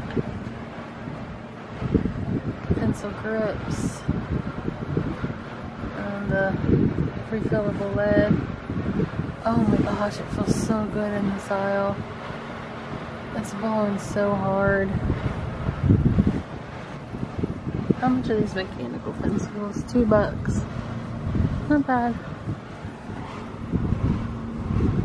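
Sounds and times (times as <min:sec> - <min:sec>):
air draft buffeting microphone: 0:00.0 - 0:25.0.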